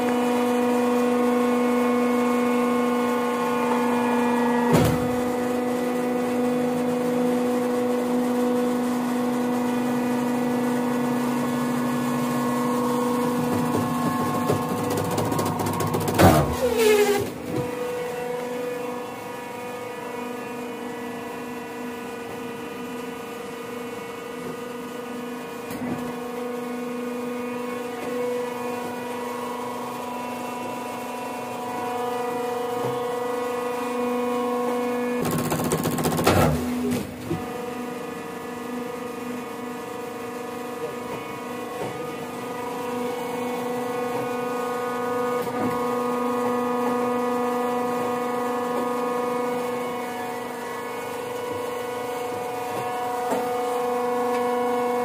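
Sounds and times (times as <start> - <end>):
hydraulic press humming: 0.0 - 55.0
loud clatter with falling whine: 0.0 - 55.0.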